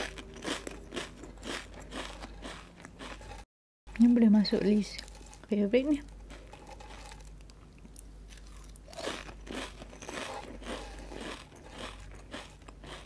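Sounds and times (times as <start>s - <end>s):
crackers being chewed: 0.0s - 3.5s, 6.1s - 13.0s.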